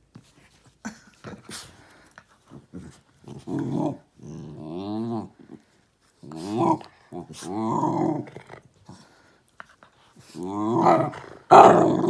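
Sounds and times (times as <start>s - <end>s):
dogs scuffling and rustling: 0.0s - 3.9s
dogs growling: 2.5s - 9.4s, 10.2s - 12.0s.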